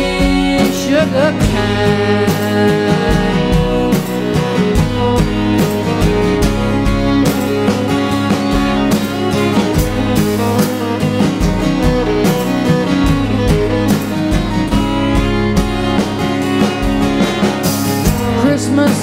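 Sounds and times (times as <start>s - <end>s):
bowed fiddle: 0.0s - 19.0s
drum kit steady beat: 0.0s - 19.0s
strummed acoustic guitar: 0.0s - 19.0s.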